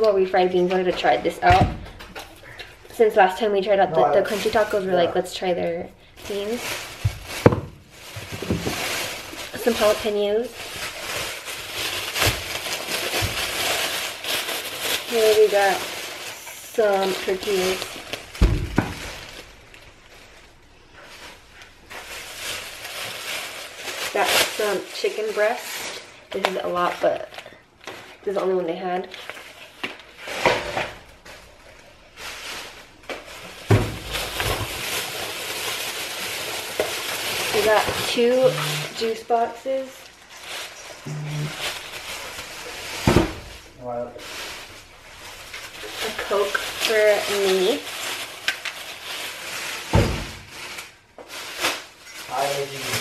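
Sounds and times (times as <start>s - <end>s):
plastic bag rustling: 0.0s - 53.0s.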